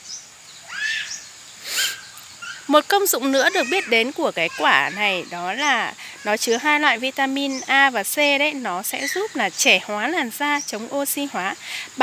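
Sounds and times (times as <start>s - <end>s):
bird calls: 0.0s - 12.0s
faint high insect hum: 0.0s - 12.0s.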